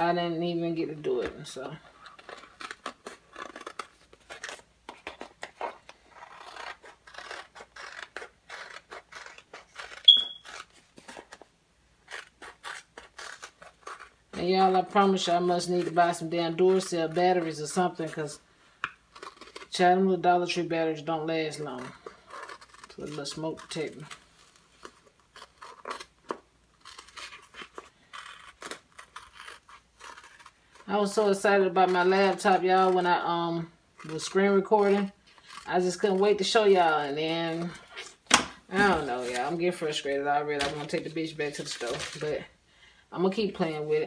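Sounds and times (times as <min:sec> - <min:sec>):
smoke detector chirp: 0:10.1 - 0:10.4.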